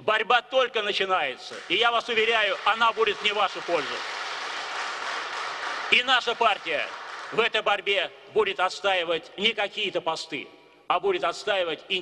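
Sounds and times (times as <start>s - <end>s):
audience applause: 1.6s - 7.5s.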